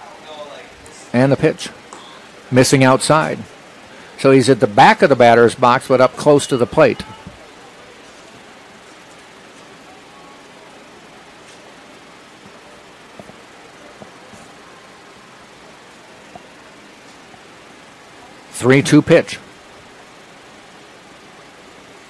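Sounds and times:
background hiss: 0.0s - 22.0s.

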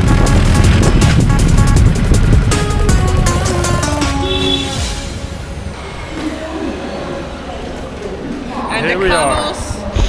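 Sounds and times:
street hum: 0.0s - 8.4s.

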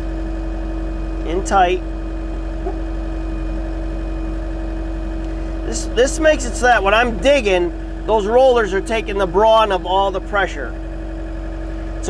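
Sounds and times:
engine whine: 0.0s - 12.0s
excavator diesel engine running: 0.0s - 12.0s.

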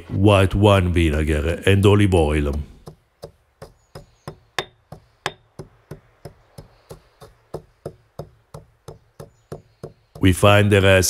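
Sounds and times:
stone pestle pounding in mortar: 2.3s - 10.5s.

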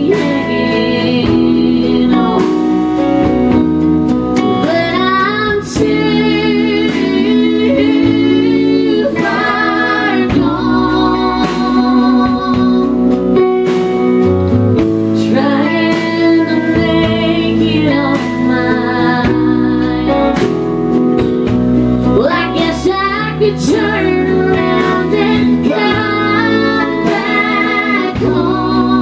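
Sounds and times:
woman singing: 0.0s - 3.7s, 4.4s - 13.4s, 15.1s - 20.6s, 22.0s - 29.0s
band accompanying: 0.0s - 29.0s.

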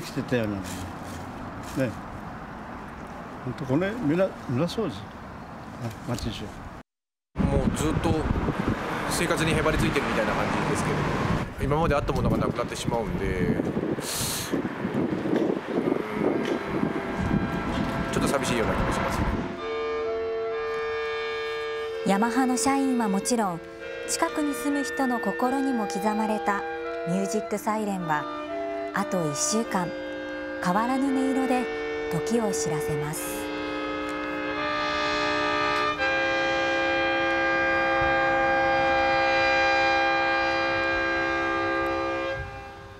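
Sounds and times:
siren held note: 15.7s - 42.9s.

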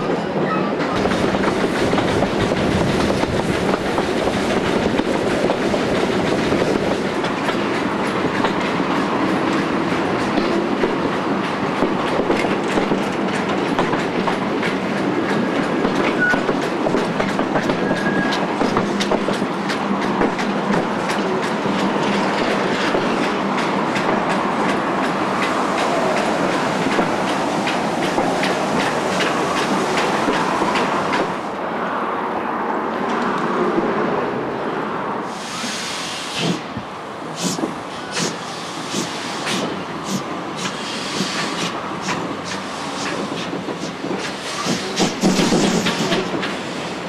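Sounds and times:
train rumble: 0.0s - 47.0s
train wheels clicking over rail joints: 0.8s - 31.4s, 36.3s - 47.0s.

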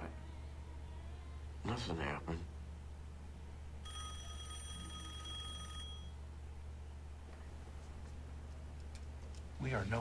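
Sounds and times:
telephone bell ringing: 3.8s - 6.2s.

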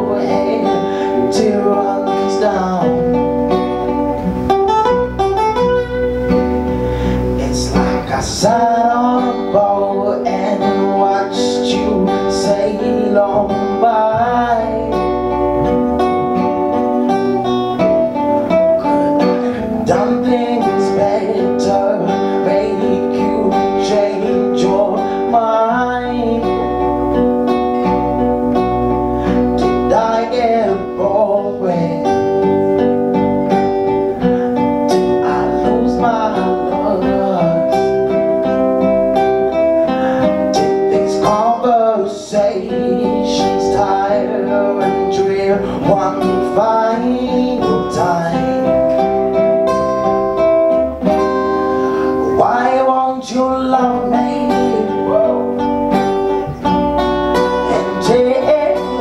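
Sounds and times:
man singing: 0.0s - 4.0s, 7.0s - 16.5s, 18.8s - 28.2s, 29.2s - 32.6s, 34.5s - 38.7s, 40.2s - 50.1s, 51.9s - 55.7s, 57.4s - 59.0s
electric bass guitar: 0.0s - 59.0s
strummed acoustic guitars: 0.0s - 59.0s.

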